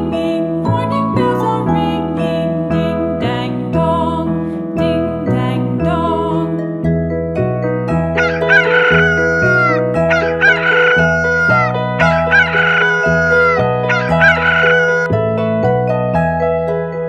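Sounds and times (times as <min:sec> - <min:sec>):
background music: 0:00.0 - 0:17.0
rooster crowing: 0:08.2 - 0:15.1.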